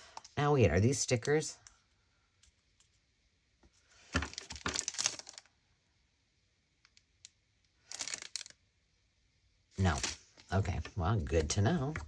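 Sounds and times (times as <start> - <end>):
plastic packet crinkling: 4.2 - 5.5, 7.8 - 8.6.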